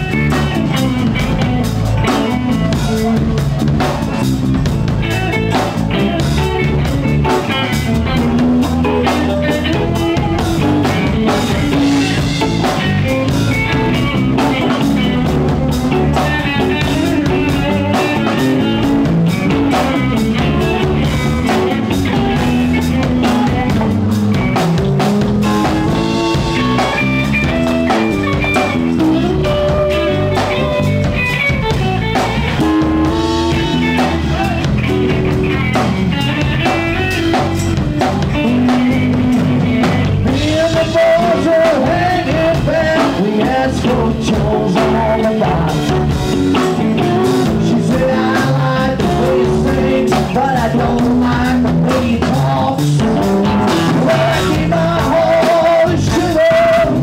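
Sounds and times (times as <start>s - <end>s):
blues-rock band jamming: 0.0s - 57.0s
drum kit beat: 0.0s - 57.0s
electric guitar lead lines: 0.0s - 57.0s.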